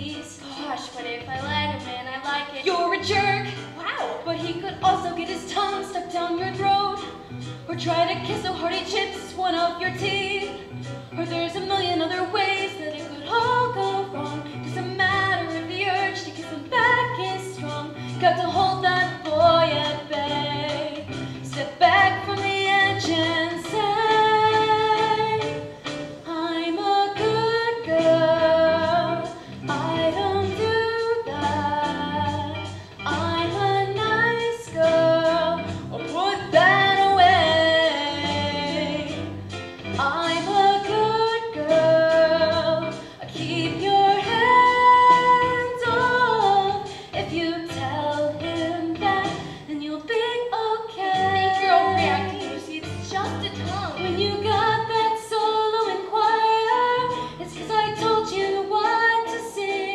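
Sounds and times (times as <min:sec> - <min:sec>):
instrumental accompaniment: 0:00.0 - 0:59.9
young voices singing: 0:54.6 - 0:59.9.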